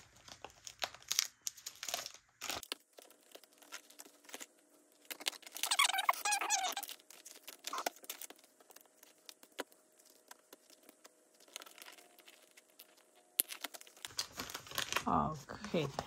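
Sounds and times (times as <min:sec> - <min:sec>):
plastic pages rustling and crinkling: 0:00.0 - 0:16.0
plastic squeaking: 0:03.0 - 0:15.1.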